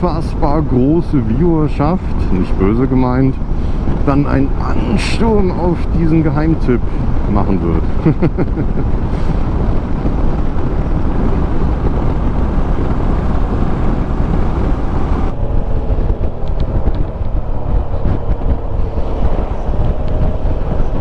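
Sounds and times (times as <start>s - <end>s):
wind rushing over microphone: 0.0s - 21.0s
motorcycle engine running: 9.0s - 21.0s.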